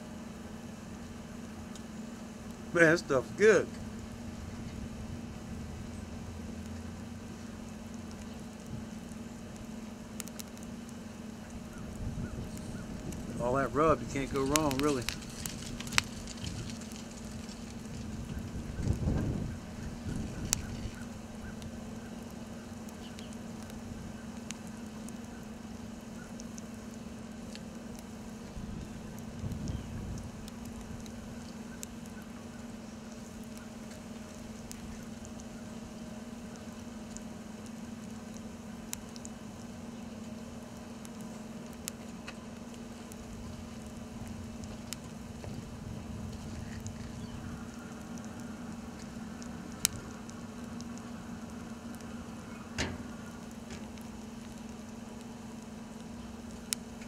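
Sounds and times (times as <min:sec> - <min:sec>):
steady low hum: 0:00.0 - 0:57.0
crackles and pops: 0:00.3 - 0:57.0.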